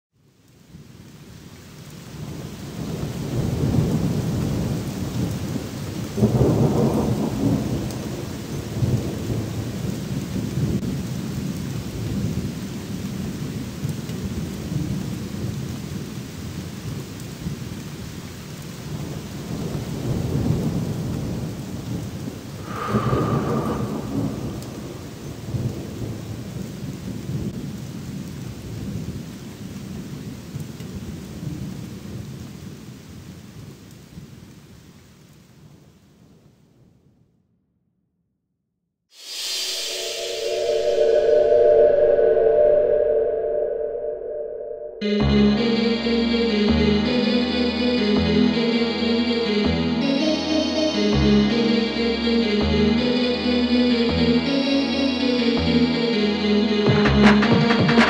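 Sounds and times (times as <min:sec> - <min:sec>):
steady rain: 0:00.1 - 0:37.1, 0:39.1 - 0:41.2, 0:45.1 - 0:58.0
thunder rumbling: 0:02.2 - 0:17.6, 0:18.8 - 0:32.5
sharp thunder peal: 0:06.2 - 0:11.0, 0:22.6 - 0:26.7.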